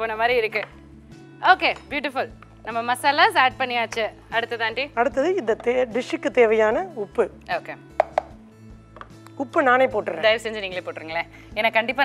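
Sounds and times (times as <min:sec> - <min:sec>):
utensil knocking on cookware: 0:08.0 - 0:09.2
woman's voice: 0:09.4 - 0:12.0.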